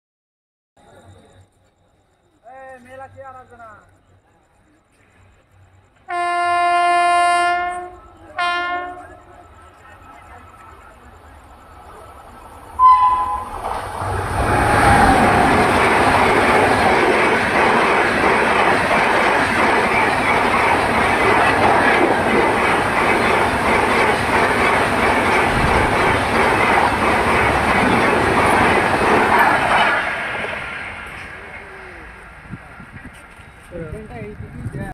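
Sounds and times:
train rushing past: 0:05.2 - 0:34.9
train horn blasts: 0:06.1 - 0:09.4, 0:12.8 - 0:13.6
wheels clickety-clack on rails: 0:13.5 - 0:34.9.

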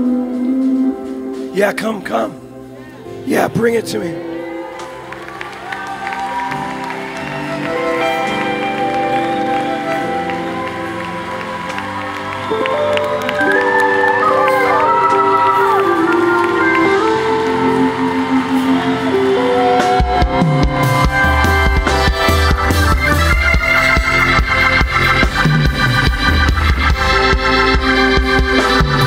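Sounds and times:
live band music: 0:00.0 - 0:29.0
bass and drums: 0:13.2 - 0:29.0.

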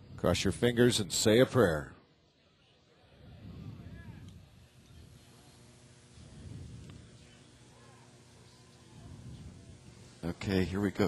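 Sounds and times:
faint murmuring voices: 0:02.1 - 0:11.0.

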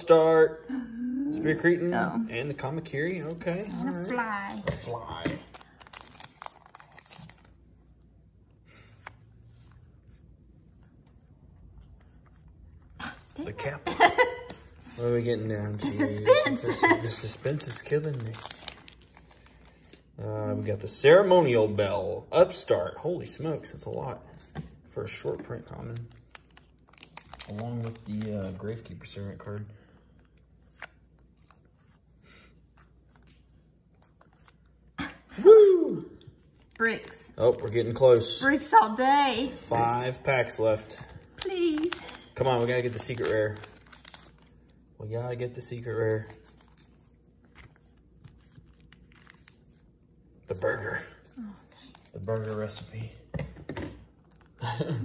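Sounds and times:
trading cards being handled: 0:02.8 - 0:21.9, 0:23.5 - 0:35.3, 0:36.2 - 0:38.6, 0:39.5 - 0:44.9, 0:45.5 - 0:53.4
wrapper crinkling and tearing: 0:03.1 - 0:07.6, 0:16.9 - 0:20.0, 0:25.7 - 0:29.5, 0:36.5 - 0:38.5, 0:39.6 - 0:44.8, 0:45.7 - 0:49.8, 0:50.6 - 0:53.1.

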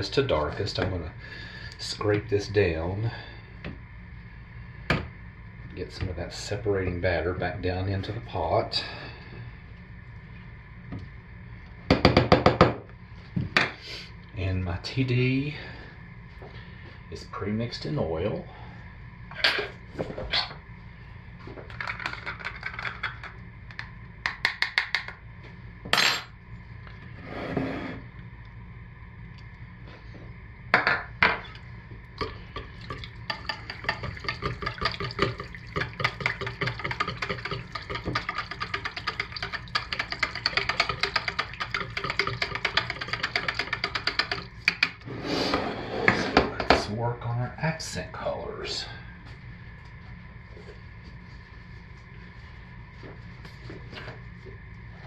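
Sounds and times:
rapid clicking stirring: 0:21.7 - 0:23.4, 0:32.2 - 0:45.0
utensil tapping plastic pitcher: 0:32.9 - 0:44.9.

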